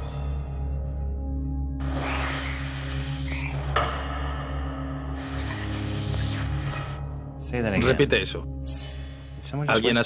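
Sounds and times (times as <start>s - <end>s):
dark droning score: 0.0s - 10.0s.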